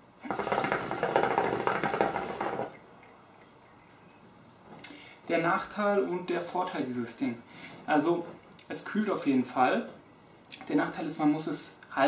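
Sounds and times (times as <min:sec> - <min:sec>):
hookah water bubbling: 0:00.2 - 0:03.8.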